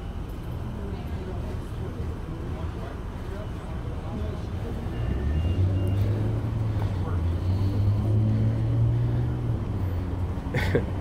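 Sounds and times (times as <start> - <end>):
faint indistinct voices: 0.0 - 10.5
vehicle engine rumbling: 0.0 - 11.0.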